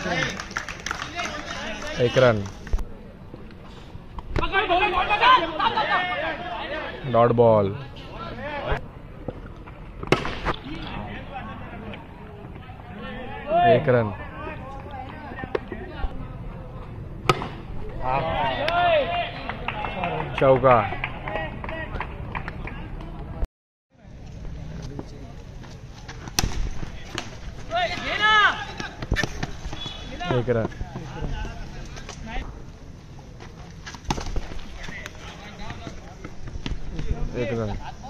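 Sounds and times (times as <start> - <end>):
players calling: 4.4 - 8.8, 26.3 - 32.4
bat striking ball: 10.0 - 10.6
loud shout: 18.0 - 20.1, 27.7 - 28.8.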